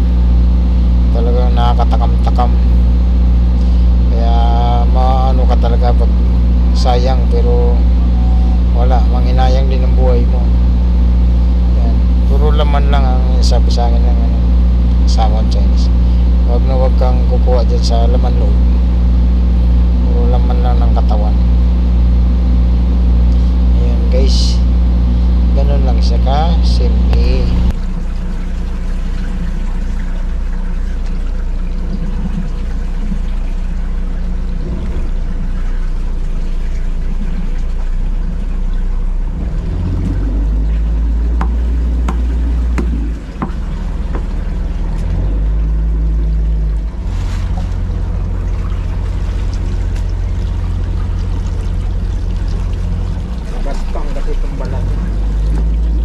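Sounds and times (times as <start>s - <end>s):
low motor hum: 0.0s - 56.0s
voices: 1.1s - 2.7s, 4.1s - 18.7s, 19.9s - 21.6s, 23.4s - 27.7s, 53.4s - 55.7s.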